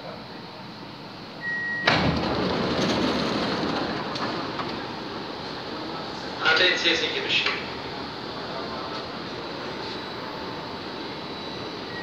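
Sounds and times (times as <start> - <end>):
metro train rushing: 0.6 - 12.0.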